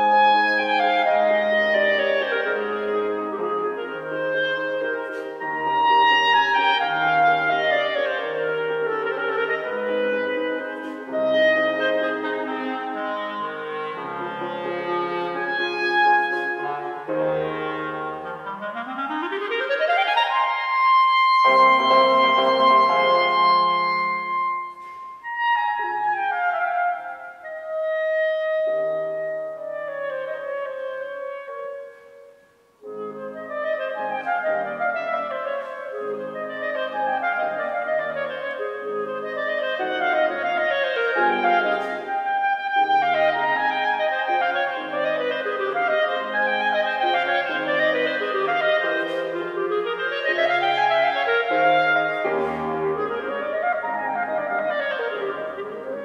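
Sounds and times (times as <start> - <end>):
piano accompaniment: 0.0 - 56.0
solo melody instrument: 0.0 - 56.0.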